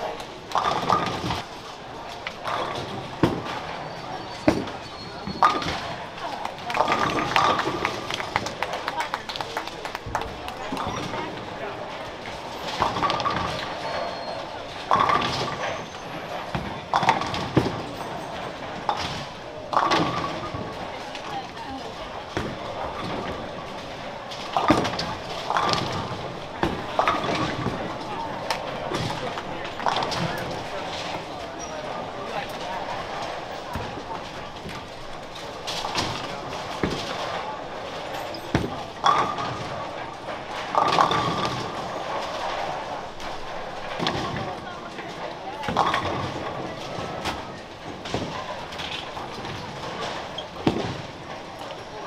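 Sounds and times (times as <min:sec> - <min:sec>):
bowling pins clattering: 0:00.0 - 0:52.0
chatter of many people: 0:00.0 - 0:52.0.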